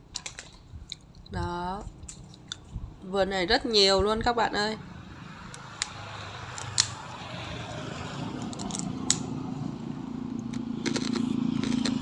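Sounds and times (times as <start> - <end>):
vehicle engine humming: 4.8 - 12.0.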